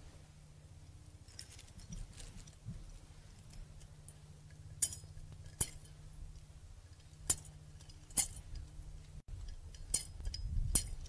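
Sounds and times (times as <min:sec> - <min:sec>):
low steady hum: 0:00.0 - 0:11.0
light metallic clinks and ticks: 0:03.2 - 0:11.0.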